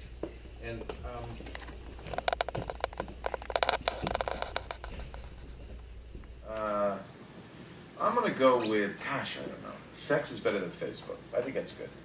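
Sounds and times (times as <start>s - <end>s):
low room hum: 0.0s - 12.0s
rapid clicks and taps: 0.2s - 6.7s.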